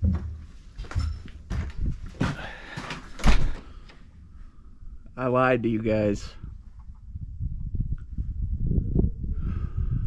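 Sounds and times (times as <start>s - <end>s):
knocks and bumps: 0.0s - 3.7s
door opening and shutting: 0.8s - 4.0s.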